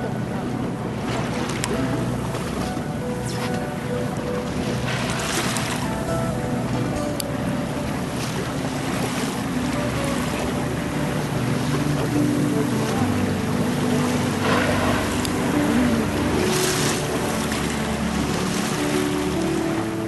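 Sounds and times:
boat engine running: 0:00.0 - 0:20.0
water washing: 0:00.0 - 0:20.0.

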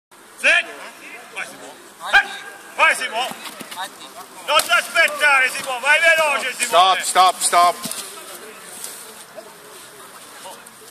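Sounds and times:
faint distant voices: 0:00.2 - 0:10.9
steady high hiss: 0:00.2 - 0:10.9.

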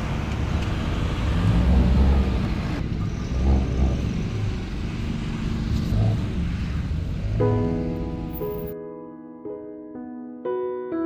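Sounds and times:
cars driving past: 0:00.0 - 0:08.7.

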